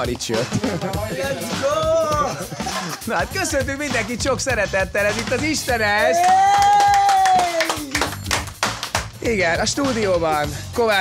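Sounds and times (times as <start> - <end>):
people clapping: 6.0 - 9.2
long drawn-out shout: 6.1 - 7.9.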